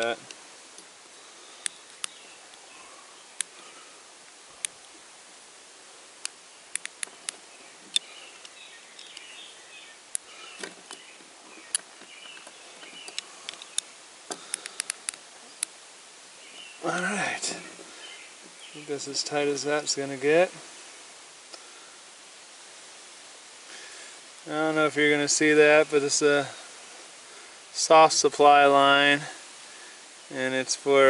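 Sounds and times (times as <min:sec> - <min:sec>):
faint outdoor background hiss: 0:00.0 - 0:31.0.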